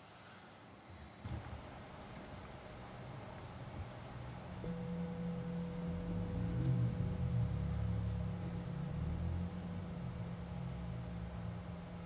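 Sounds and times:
singing bowl ringing: 0:04.6 - 0:12.0.

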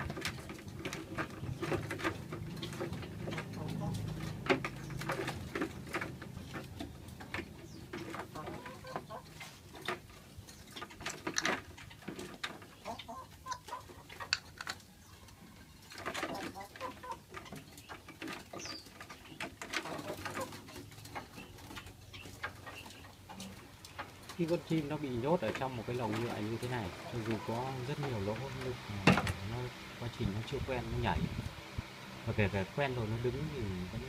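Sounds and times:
birds calling: 0:00.0 - 0:34.0.

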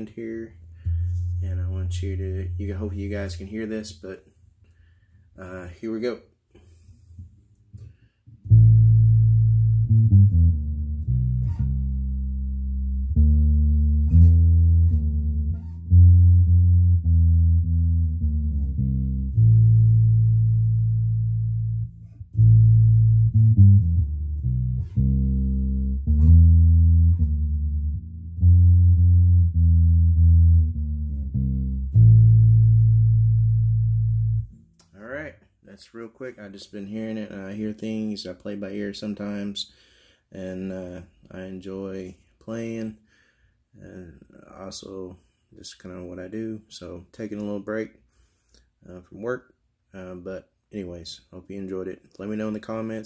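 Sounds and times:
electric bass riff: 0:00.0 - 0:04.0, 0:07.2 - 0:34.9.

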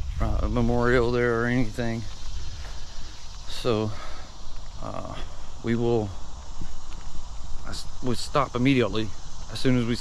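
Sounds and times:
man talking: 0:00.1 - 0:02.2, 0:03.4 - 0:04.2, 0:04.8 - 0:06.2, 0:07.6 - 0:10.0.

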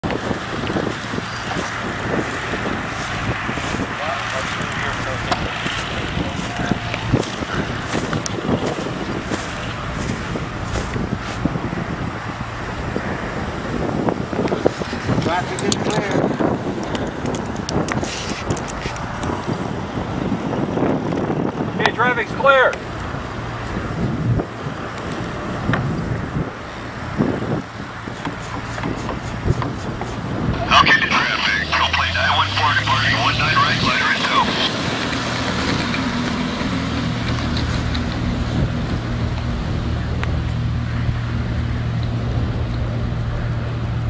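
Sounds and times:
wind buffeting microphone: 0:00.0 - 0:44.0
faint voices: 0:01.4 - 0:10.9, 0:30.5 - 0:35.3
light aircraft engine idling: 0:24.4 - 0:44.0.

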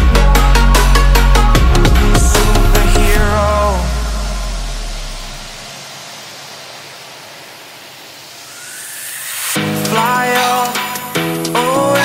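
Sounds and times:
music: 0:00.0 - 0:05.7, 0:09.6 - 0:12.0
white noise hiss sweep: 0:00.4 - 0:12.0
faint rising tone: 0:03.0 - 0:11.3.

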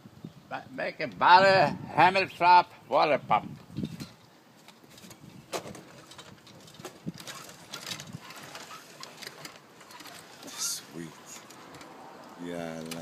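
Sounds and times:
short bird calls: 0:10.4 - 0:11.0.

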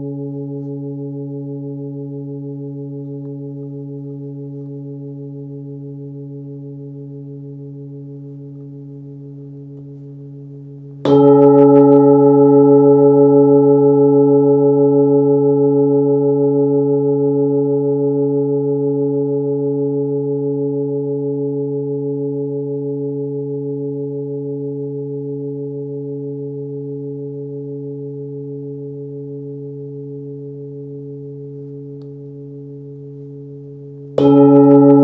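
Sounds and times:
padded mallet striking bowl: 0:00.0 - 0:10.2, 0:11.0 - 0:33.0, 0:34.1 - 0:35.0
singing bowl ringing: 0:00.0 - 0:35.0.

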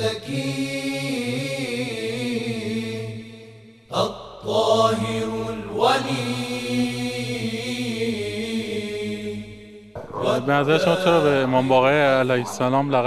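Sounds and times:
person chanting in long notes: 0:10.2 - 0:12.5.

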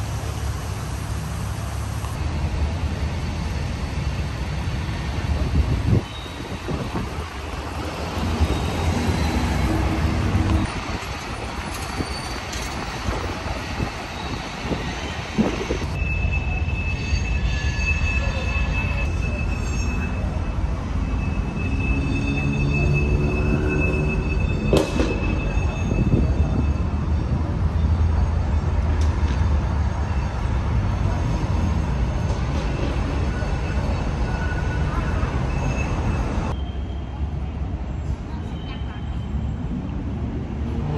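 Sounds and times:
train rumbling over overpass: 0:00.0 - 0:40.9
high wheel squeal: 0:04.8 - 0:39.8.

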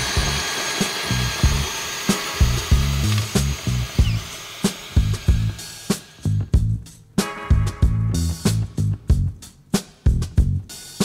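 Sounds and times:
background music with bass line: 0:00.0 - 0:04.3, 0:04.9 - 0:11.0
drill-driven tiller motor whine: 0:00.0 - 0:06.5.

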